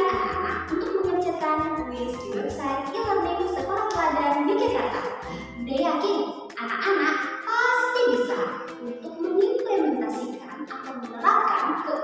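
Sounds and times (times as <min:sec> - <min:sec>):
backing music with steady beat: 0:00.0 - 0:12.0.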